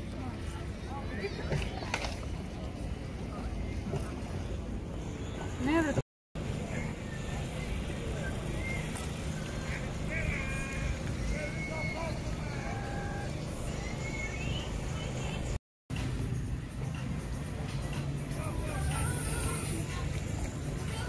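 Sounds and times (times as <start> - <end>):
faint distant voices: 0.0 - 15.6
waves lapping at stone quay: 0.0 - 16.2, 17.0 - 21.0.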